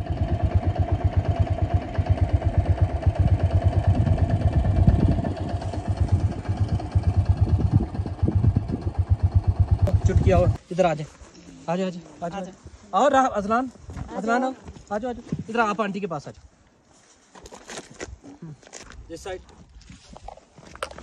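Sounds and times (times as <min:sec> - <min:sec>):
motorcycle engine idling: 0:00.0 - 0:10.6.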